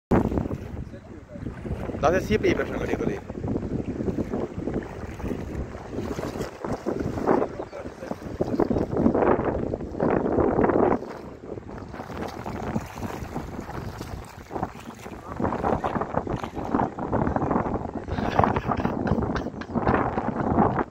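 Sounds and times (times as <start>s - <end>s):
wind buffeting microphone: 0.1s - 20.9s
feet wading through water: 0.2s - 17.8s.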